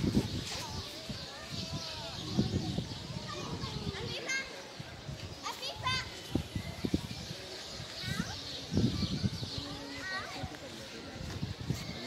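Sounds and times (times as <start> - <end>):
children shouting and playing: 0.0 - 12.0.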